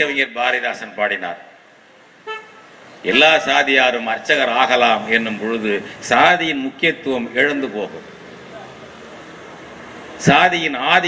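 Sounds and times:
man's amplified speech: 0.0s - 1.5s, 3.0s - 8.8s, 10.2s - 11.0s
short high horn toot: 2.2s - 2.7s.

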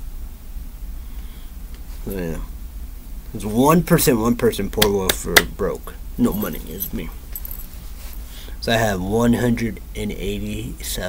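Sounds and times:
faint metallic jingling: 5.8s - 8.1s.

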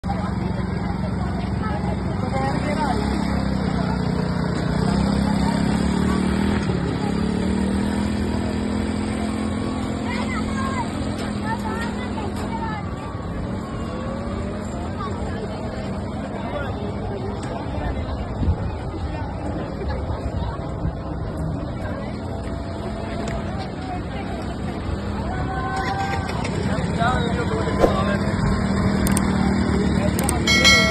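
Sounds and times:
quad bike engine: 0.1s - 16.4s, 24.8s - 30.9s.

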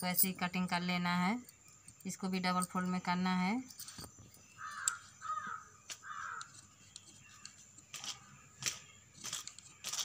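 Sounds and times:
harsh bird calls: 4.2s - 9.1s
sharp clicks: 4.8s - 5.0s.

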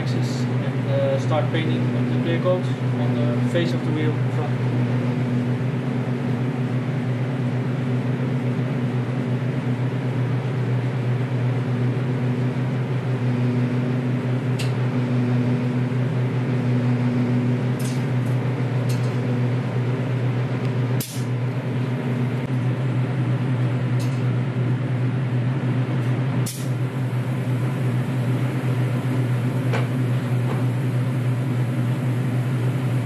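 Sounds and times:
machine low hum: 0.0s - 33.0s.

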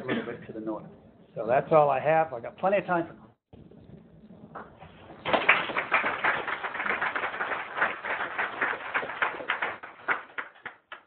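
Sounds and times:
audience applauding: 5.2s - 11.0s.

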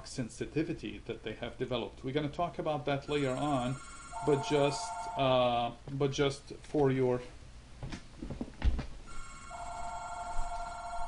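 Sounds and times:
telephone ringtone: 3.1s - 5.3s, 9.1s - 11.0s.

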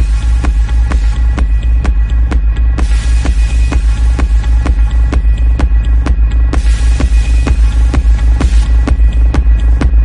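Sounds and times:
heavy steady bass: 0.0s - 10.0s
kick drum: 0.0s - 10.0s.

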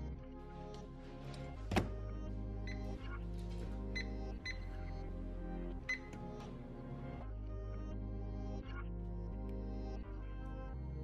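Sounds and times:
background music: 0.0s - 11.0s
microwave keypad beeps: 2.6s - 3.0s, 3.8s - 4.9s, 5.9s - 6.2s.

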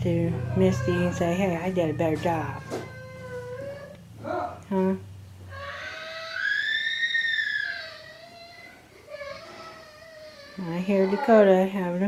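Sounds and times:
child wailing: 0.2s - 4.5s, 5.5s - 11.6s.

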